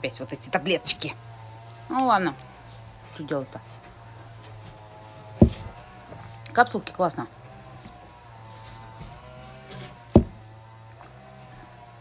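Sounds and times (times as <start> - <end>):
sharp knock: 10.2 - 10.4.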